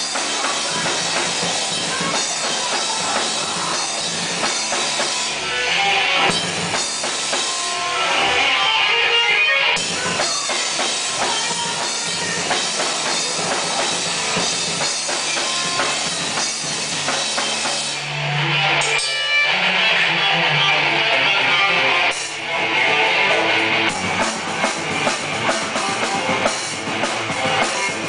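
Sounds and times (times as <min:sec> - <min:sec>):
live rock band playing: 0:00.0 - 0:28.0.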